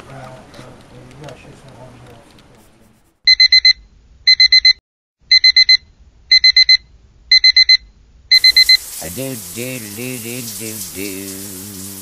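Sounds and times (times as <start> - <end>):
alarm clock beeping: 3.3 - 8.8.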